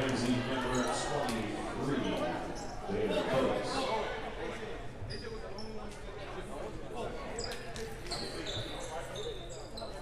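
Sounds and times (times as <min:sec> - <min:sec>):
sneaker squeaks: 0:07.4 - 0:10.0.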